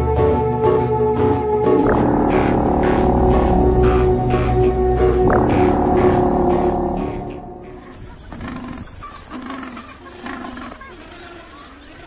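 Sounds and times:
penguins calling harshly: 1.2s - 12.0s.

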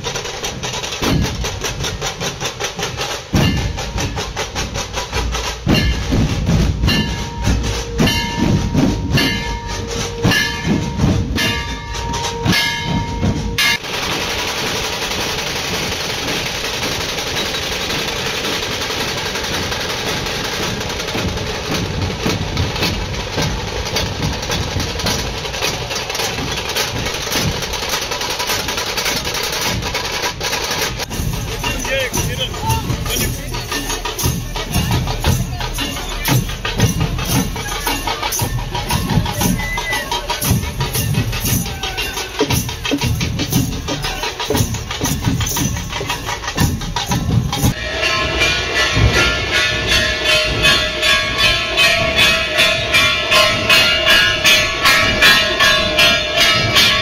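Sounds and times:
fast heavy drumming: 0.0s - 57.0s
steady high note: 47.7s - 57.0s.

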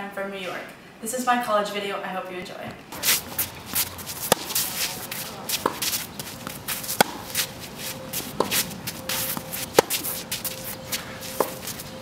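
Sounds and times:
shoes scuffing on clay court: 2.4s - 12.0s
tennis racket hitting ball: 2.9s - 11.8s.

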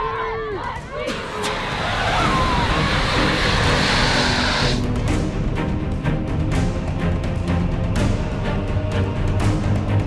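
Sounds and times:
pressurised smoke jet hissing: 1.8s - 4.9s.

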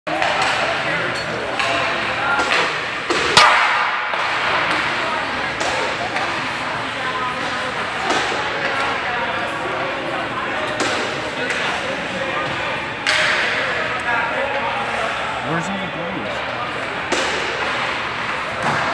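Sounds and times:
pucks cracking against boards: 0.1s - 6.6s, 7.3s - 9.1s, 10.6s - 14.7s, 17.0s - 18.9s
murmur of indistinct voices: 0.1s - 18.9s.

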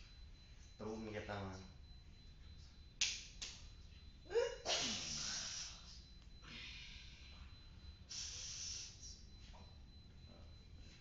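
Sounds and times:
sharp breath bursts: 8.1s - 9.0s.

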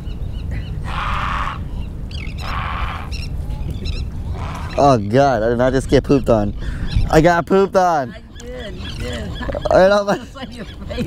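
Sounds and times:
faint high bird calls: 0.0s - 5.2s.

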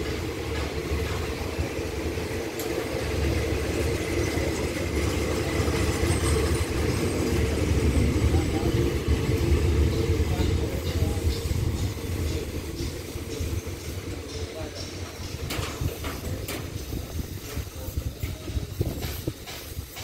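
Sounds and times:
diesel locomotive drone: 0.0s - 20.0s
train coaches rumbling: 0.0s - 20.0s.

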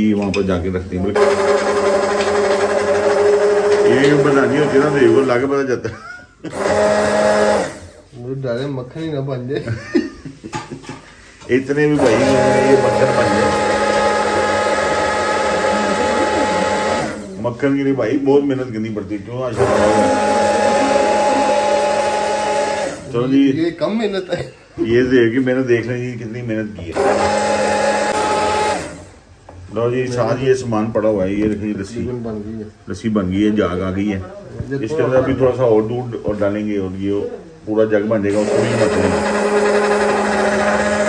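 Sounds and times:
hand blender motor whirring: 1.2s - 5.5s, 6.5s - 8.0s, 12.0s - 17.4s, 19.6s - 23.2s, 26.9s - 29.2s, 38.3s - 41.0s.

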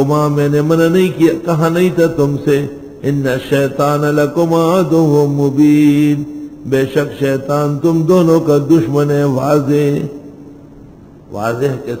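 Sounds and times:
man chanting melodically: 0.0s - 10.5s, 11.3s - 12.0s.

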